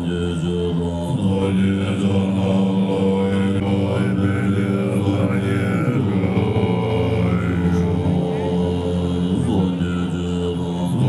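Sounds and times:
monks chanting in deep voices: 0.0 - 11.0.

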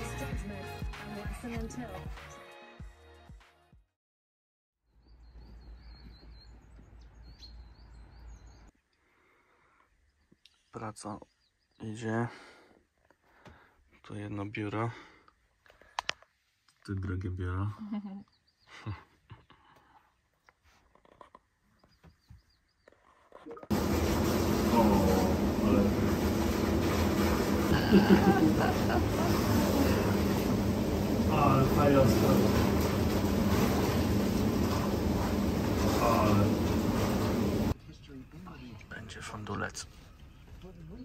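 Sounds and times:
small birds chirping: 4.9 - 12.3, 18.0 - 23.4
churning bubbling water: 23.7 - 37.7
low rumbling noise: 23.7 - 37.8
pump hum: 23.7 - 37.8.

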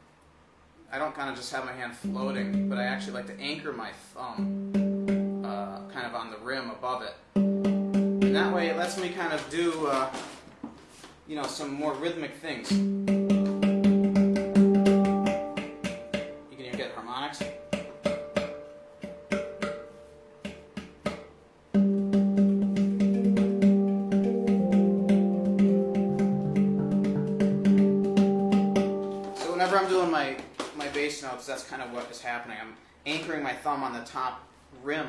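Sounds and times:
man talking: 0.9 - 4.5, 5.4 - 7.2, 8.3 - 10.2, 11.3 - 12.8, 16.5 - 17.5, 29.4 - 35.0
handpan playing: 2.0 - 6.0, 7.3 - 9.4, 12.7 - 30.2.

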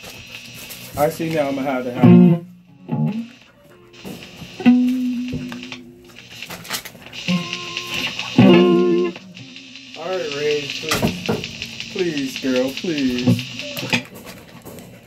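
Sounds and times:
electric guitar through amplifier: 0.0 - 15.0
wavering guitar tones: 1.9 - 6.1, 7.2 - 14.1
sharp pop: 10.9 - 11.9.

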